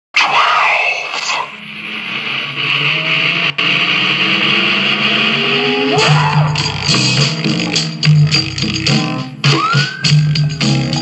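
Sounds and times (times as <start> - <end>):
rising whining tones: 1.6 - 7.2.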